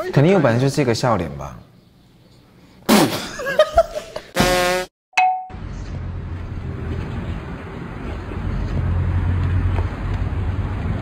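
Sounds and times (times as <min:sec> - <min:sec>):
bright ding: 0:05.2 - 0:05.6
outdoor background noise: 0:05.5 - 0:11.0.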